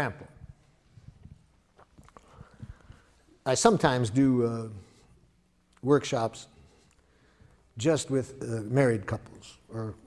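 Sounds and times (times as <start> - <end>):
faint footsteps: 0.5 - 3.2.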